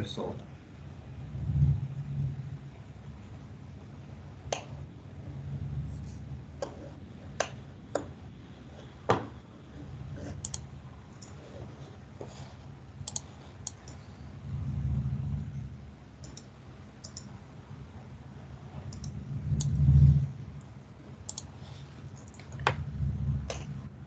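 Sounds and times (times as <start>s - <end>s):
computer clicks: 10.3s - 11.4s, 13.0s - 14.1s, 16.2s - 17.4s, 18.9s - 19.8s, 20.6s - 21.6s, 22.2s - 22.8s.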